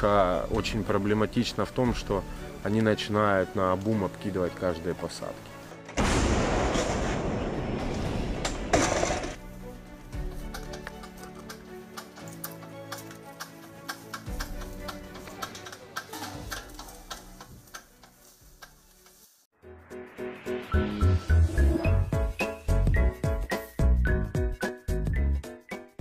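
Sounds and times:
gun firing blast: 6.0 - 9.4
background music with ticking beat: 9.8 - 19.2, 20.6 - 26.0.

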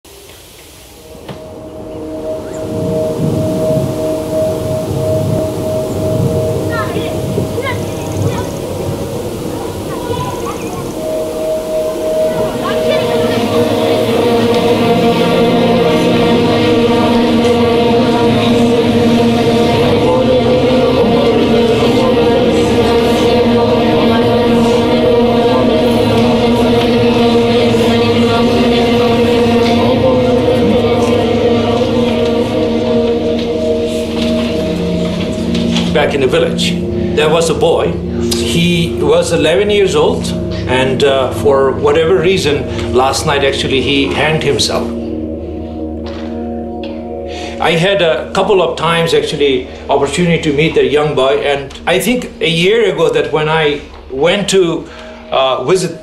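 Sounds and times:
pulsing droning tone: 0.1 - 56.0
low rumble: 0.8 - 56.0
children chanting prayers: 1.0 - 56.0.

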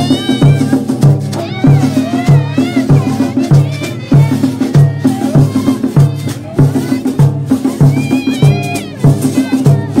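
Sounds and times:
group of voices singing: 0.0 - 10.0
large drum beating march: 0.0 - 10.0.

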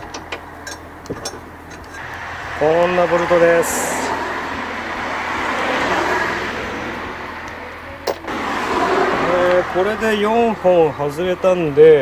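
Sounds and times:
passing vehicle rush: 1.9 - 12.0.

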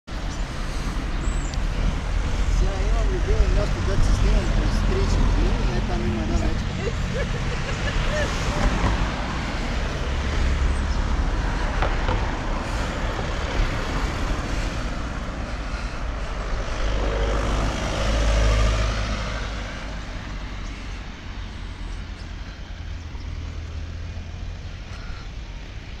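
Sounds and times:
cars passing: 0.1 - 26.0.

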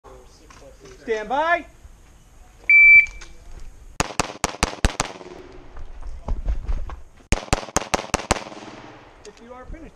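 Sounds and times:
shot timer beep: 2.7 - 3.2
pistol shots in rapid strings: 4.0 - 5.3, 7.3 - 9.1.

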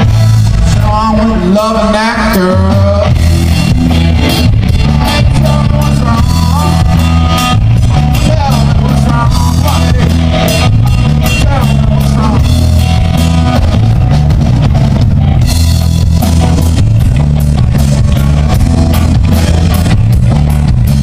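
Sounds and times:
blues-rock band playing: 0.0 - 21.0
lead guitar bending notes: 0.0 - 21.0.

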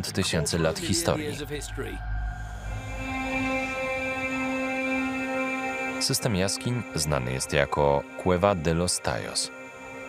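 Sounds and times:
ambient music held chord: 0.0 - 10.0.

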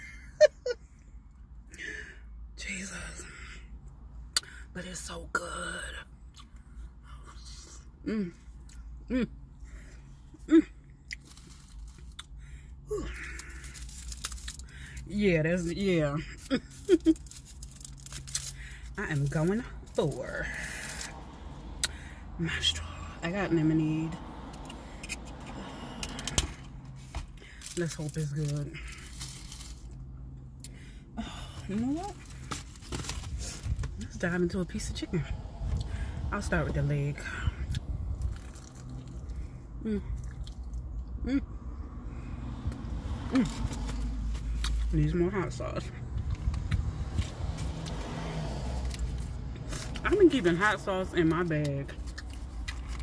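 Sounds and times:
low steady rumble: 0.0 - 53.0.

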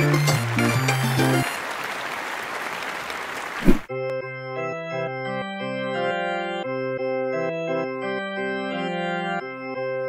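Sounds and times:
applause with cheering: 0.0 - 3.9.

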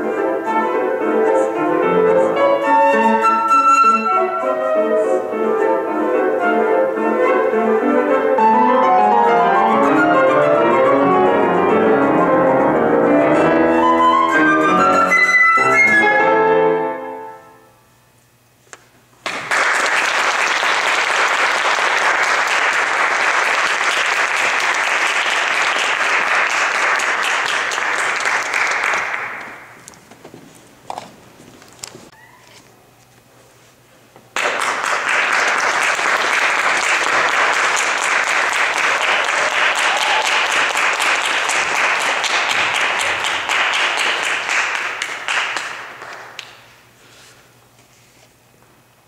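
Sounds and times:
audience applauding: 19.2 - 29.9, 34.3 - 46.8.

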